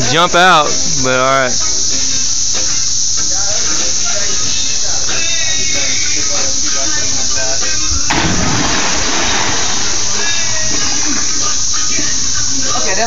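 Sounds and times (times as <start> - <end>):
voices: 3.1 - 13.0
music: 3.3 - 13.0
big splash into pool: 8.1 - 10.6.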